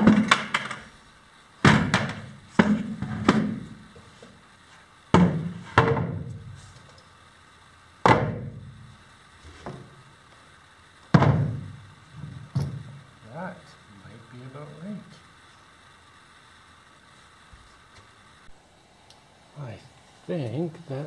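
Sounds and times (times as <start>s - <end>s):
plastic crate and chair thunks: 0.0s - 0.9s, 1.6s - 3.7s, 5.1s - 6.3s, 11.1s - 11.8s.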